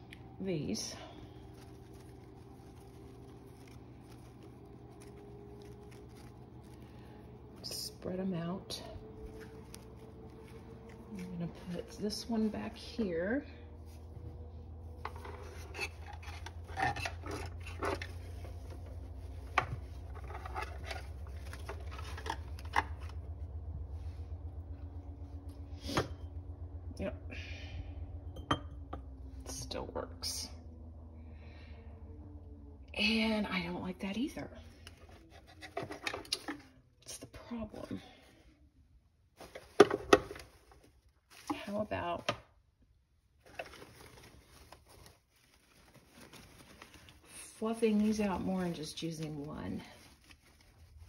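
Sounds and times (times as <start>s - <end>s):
fabric leaves rustling: 0.0s - 25.5s, 39.3s - 42.2s, 43.2s - 51.0s
low hum: 0.0s - 51.0s.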